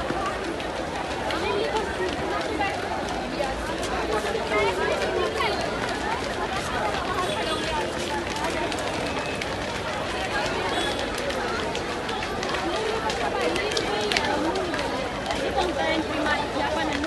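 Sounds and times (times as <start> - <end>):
crowd talking and calling out: 0.0 - 17.0
footsteps: 0.0 - 17.0.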